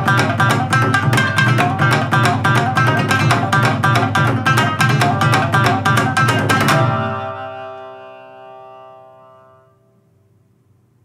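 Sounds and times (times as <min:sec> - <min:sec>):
shamisen and drum chord ringing: 0:00.0 - 0:09.9.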